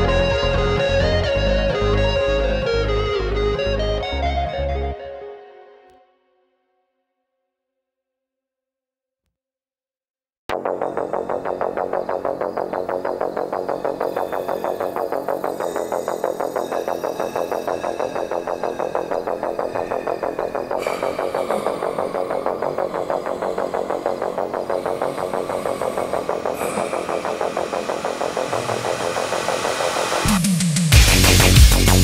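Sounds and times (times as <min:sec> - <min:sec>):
electronic music with synth pulse: 0:00.0 - 0:05.5, 0:10.5 - 0:32.0.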